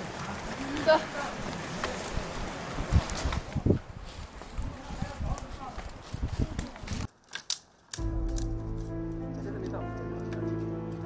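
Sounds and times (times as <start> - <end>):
music with sustained notes: 8.0 - 11.0.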